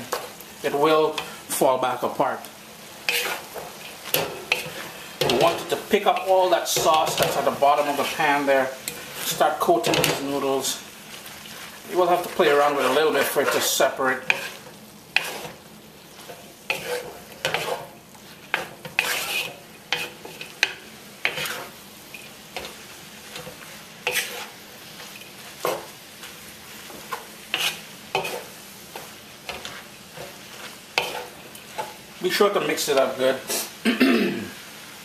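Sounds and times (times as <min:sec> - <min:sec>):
noodles sizzling: 0:00.0 - 0:35.0
spatula scraping metal wok: 0:03.0 - 0:33.6.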